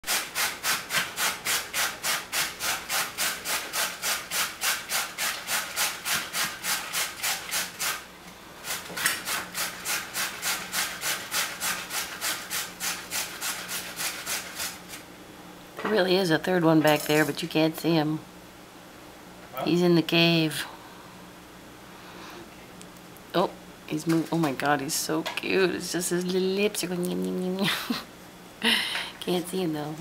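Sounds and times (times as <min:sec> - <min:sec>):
rhythmic rubbing strokes: 0:00.0 - 0:15.0.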